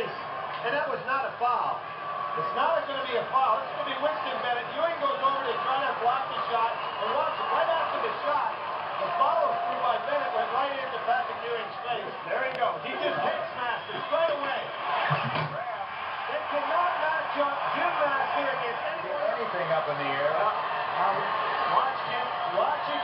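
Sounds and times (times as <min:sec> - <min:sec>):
arena crowd noise: 0:00.0 - 0:23.0
men talking: 0:00.0 - 0:23.0.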